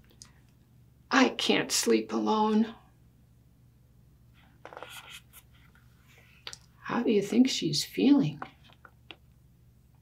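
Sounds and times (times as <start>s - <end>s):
low room hum: 0.0s - 10.0s
small scrapes: 4.4s - 6.4s
paper book rustling: 4.6s - 6.2s.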